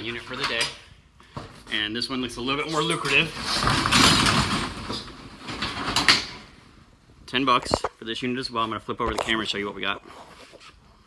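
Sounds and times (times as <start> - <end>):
metal roll-up door rattling: 2.9 - 6.5.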